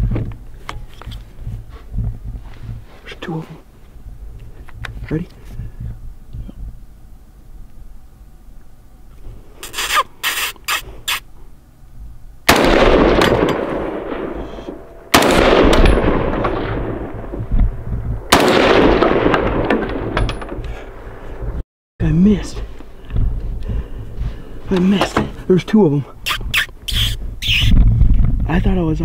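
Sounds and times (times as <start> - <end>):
rifle shots with echo: 12.5 - 17.6, 18.3 - 20.6.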